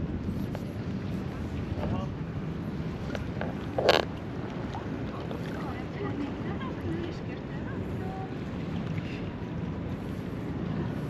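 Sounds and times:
wind rumbling on microphone: 0.0 - 11.0
faint chatter of passers-by: 5.0 - 9.4.

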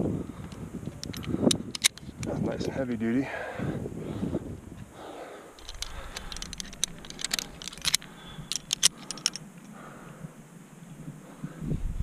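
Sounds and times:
metal climbing gear clicking: 1.0 - 2.4, 5.6 - 9.4.

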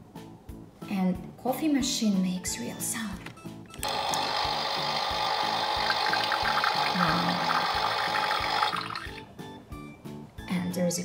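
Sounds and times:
toy coffee machine whirr and hiss: 3.8 - 9.0.

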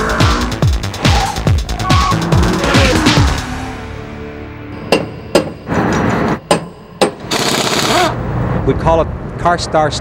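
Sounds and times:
sharp bangs: 4.8 - 7.9.

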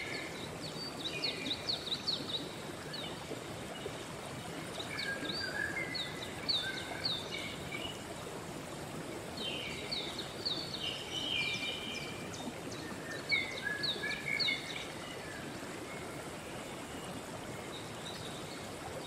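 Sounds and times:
songbird singing: 0.0 - 4.0, 4.7 - 8.1, 9.4 - 18.8
stream running: 0.0 - 19.0.

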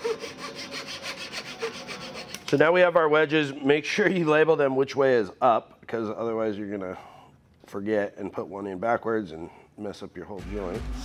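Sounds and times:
handsaw cutting wood: 0.0 - 2.5.

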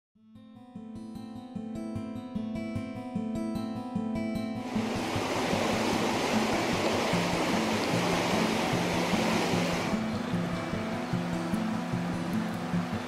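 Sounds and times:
plucked guitar music: 0.4 - 13.0
river water rushing: 4.6 - 13.0.

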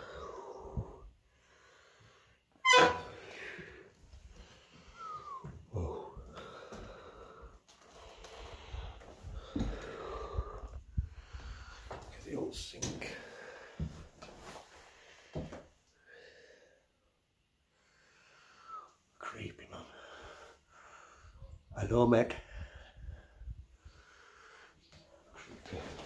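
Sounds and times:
person breathing close: 0.0 - 2.5, 3.1 - 12.0, 22.4 - 25.0.

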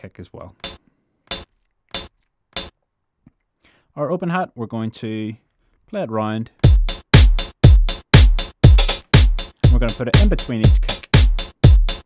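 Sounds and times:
closed hi-hat hits: 0.6 - 2.7, 6.6 - 12.0.

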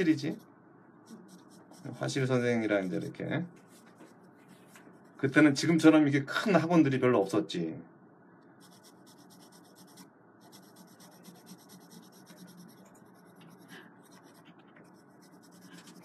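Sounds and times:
pencil scratching on paper: 1.1 - 3.1, 8.6 - 16.0.

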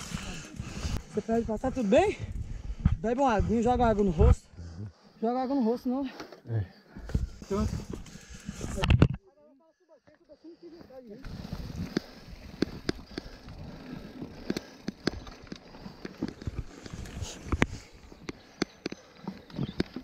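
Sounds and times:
bike rolling over dirt trail: 7.0 - 8.9, 10.8 - 20.0
bike rattling clicks and knocks: 11.2 - 20.0.

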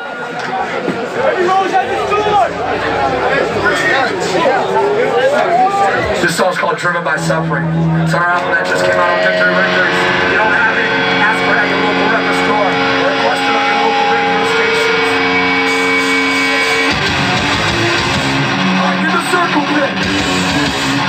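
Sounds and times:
people shouting: 0.0 - 6.2
electric guitar ringing: 0.6 - 21.0
hardcore band playing: 0.6 - 21.0.

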